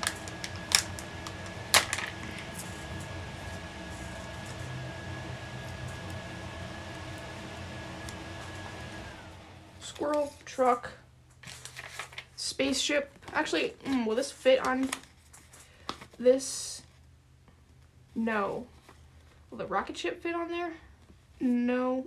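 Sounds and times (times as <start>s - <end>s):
paper stickers handled: 0.0s - 6.3s, 11.4s - 16.2s
background hum: 0.0s - 22.0s.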